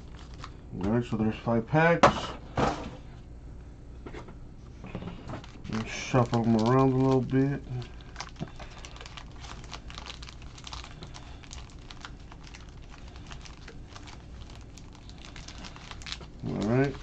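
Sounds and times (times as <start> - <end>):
foil wrappers crinkling: 0.0 - 0.6, 4.9 - 17.0.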